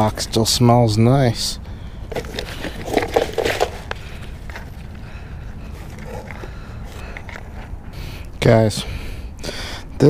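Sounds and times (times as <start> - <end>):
steady low rumble: 0.0 - 10.0
rustling: 2.0 - 8.3.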